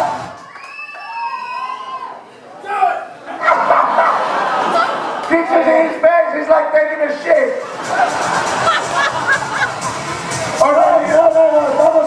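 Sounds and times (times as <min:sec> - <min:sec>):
crowd cheering: 0:00.0 - 0:02.3, 0:03.3 - 0:06.0, 0:07.6 - 0:12.0
band music: 0:07.6 - 0:12.0.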